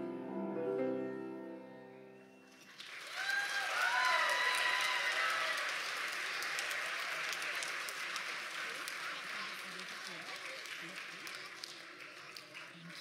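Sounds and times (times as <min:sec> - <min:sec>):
audience applause: 0:02.6 - 0:13.0.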